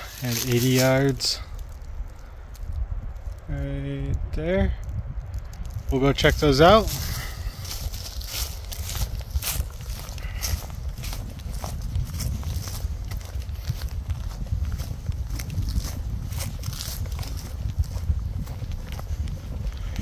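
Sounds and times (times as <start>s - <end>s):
footsteps crunching dry leaves: 0.0s - 3.5s, 5.3s - 20.0s
wind rumbling on microphone: 0.0s - 20.0s.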